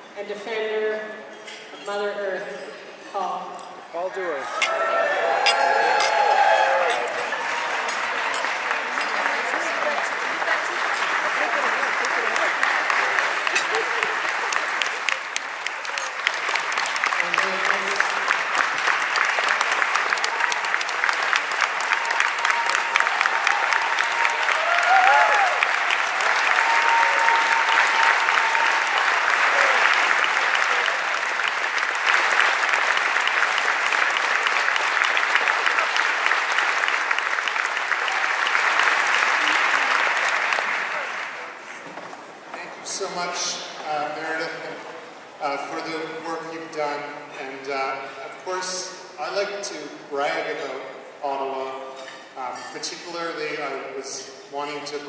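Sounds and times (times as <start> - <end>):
audience applauding: 4.6 - 42.2.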